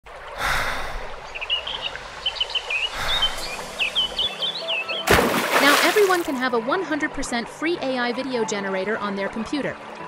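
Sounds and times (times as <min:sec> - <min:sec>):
water-like ambient noise: 0:00.0 - 0:10.0
small birds chirping: 0:01.2 - 0:05.1.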